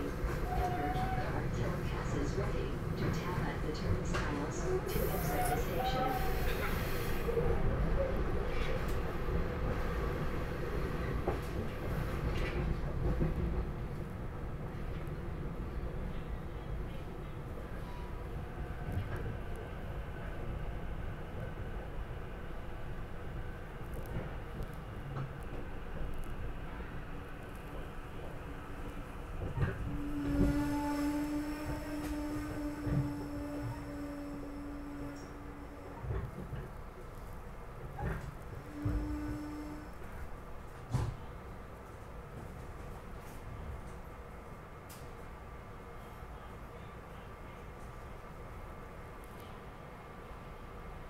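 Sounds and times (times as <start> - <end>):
train rumbling: 0.0 - 51.0.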